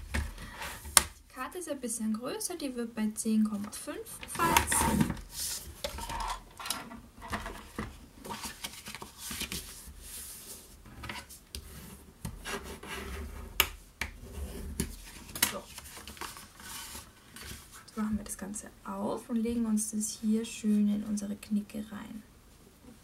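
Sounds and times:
card scraping and rubbing: 4.3s - 6.2s, 7.6s - 13.5s, 14.2s - 17.8s.

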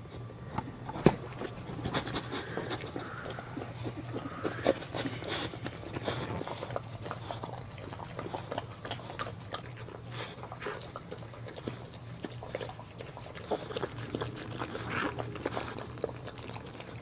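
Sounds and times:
steady low hum: 0.0s - 17.0s
dog licking and slurping: 1.0s - 17.0s.

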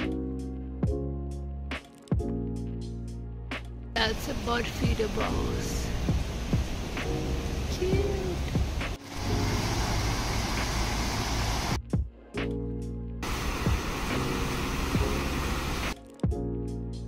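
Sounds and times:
soft sustained chords with bass: 0.1s - 17.0s
steady outdoor hiss: 4.0s - 11.8s, 13.2s - 16.0s.

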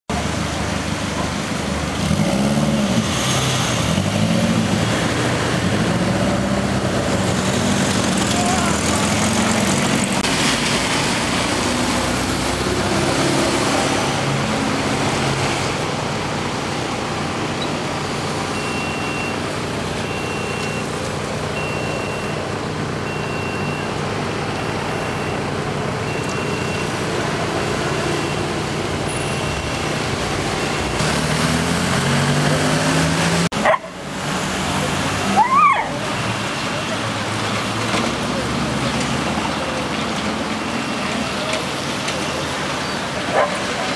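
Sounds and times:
vehicle engines passing: 0.1s - 43.9s
short high beep: 18.6s - 19.4s, 20.0s - 20.9s, 21.6s - 22.4s, 26.1s - 27.0s, 29.1s - 29.9s.

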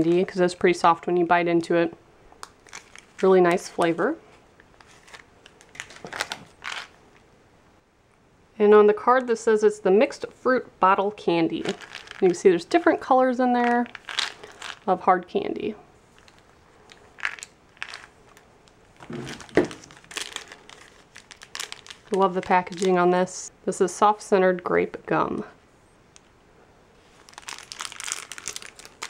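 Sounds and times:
plastic wrapper crinkling: 2.4s - 7.2s, 11.6s - 14.9s, 16.1s - 23.2s, 27.0s - 29.0s.

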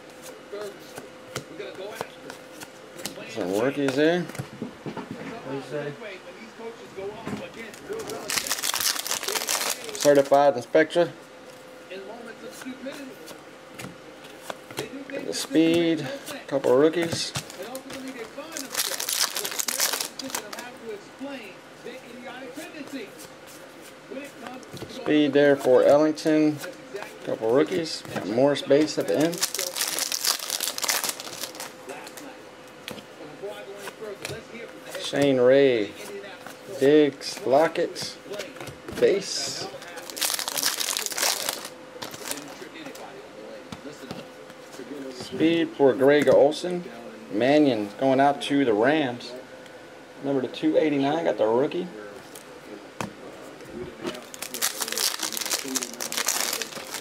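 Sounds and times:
cards rustling and clicking: 7.6s - 10.4s, 12.4s - 20.8s, 28.7s - 33.0s, 38.3s - 43.1s, 54.1s - 57.0s
foil wrapper crinkling and tearing: 7.8s - 10.4s, 17.5s - 20.7s, 29.0s - 32.2s, 39.8s - 42.6s, 54.1s - 57.0s.

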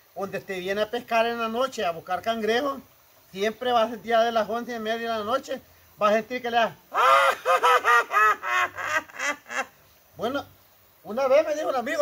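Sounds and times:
man cackling laugh: 7.0s - 9.8s.

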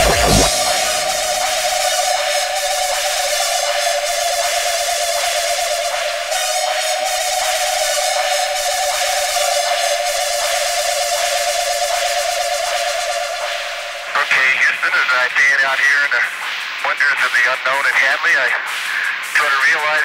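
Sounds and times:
synth drone: 0.0s - 14.8s.

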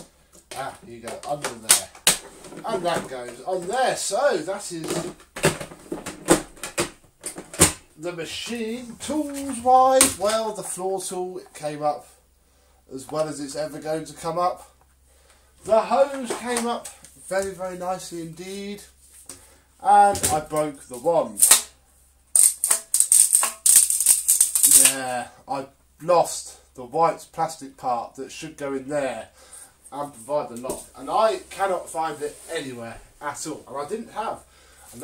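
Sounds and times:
plastic parts clicking and knocking: 4.8s - 7.9s, 22.3s - 24.9s
metal vacuum wand rattling: 22.4s - 24.9s.

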